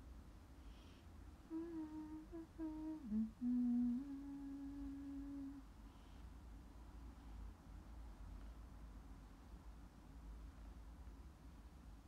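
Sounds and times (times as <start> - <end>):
woman humming a tune: 1.5 - 5.6.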